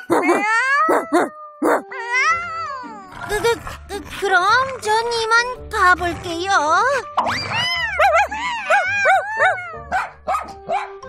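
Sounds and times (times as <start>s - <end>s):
cartoon dog barking: 0.0s - 2.0s, 7.3s - 11.0s.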